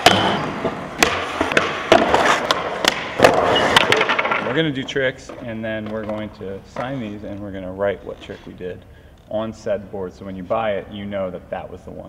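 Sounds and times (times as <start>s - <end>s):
skateboard clacks and slaps: 0.0s - 4.5s
skateboard wheels rolling on concrete: 0.4s - 6.8s.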